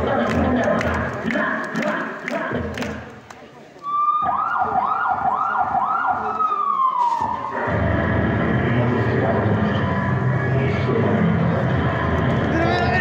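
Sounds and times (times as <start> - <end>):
dense mix of lower sounds: 0.0 - 13.0
police siren wail: 3.8 - 10.2.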